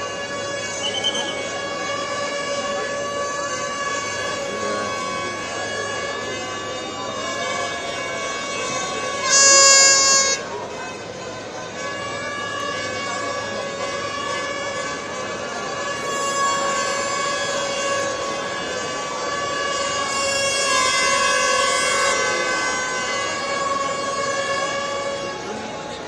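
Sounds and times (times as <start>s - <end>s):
crowd of fans: 0.0s - 26.0s
horn-like drone: 0.0s - 26.0s.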